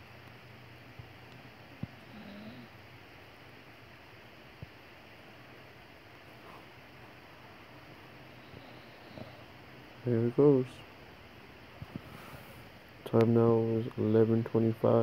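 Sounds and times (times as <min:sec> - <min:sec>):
dog breathing: 0:08.2 - 0:09.6.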